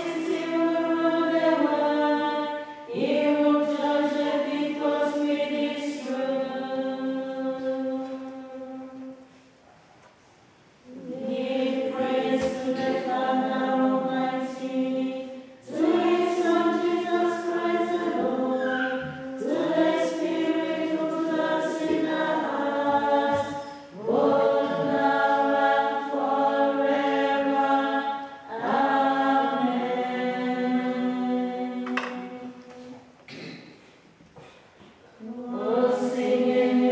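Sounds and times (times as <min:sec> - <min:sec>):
women's choir singing: 0:00.0 - 0:09.3, 0:10.9 - 0:33.0, 0:35.2 - 0:36.9.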